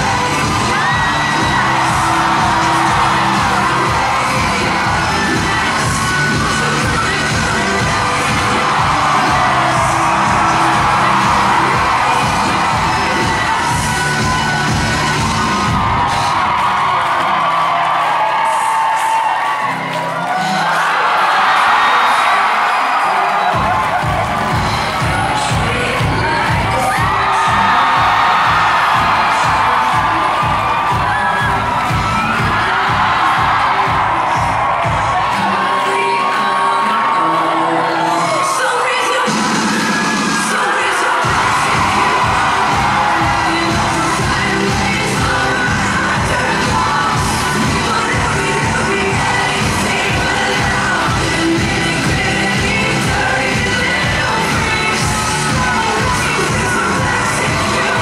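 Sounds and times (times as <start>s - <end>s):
crowd cheering and screaming: 0.0s - 58.0s
pop music over sound system: 0.0s - 58.0s.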